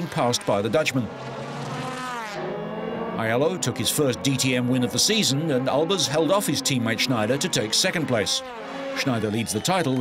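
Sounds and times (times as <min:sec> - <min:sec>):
race car engines passing: 0:00.0 - 0:10.0.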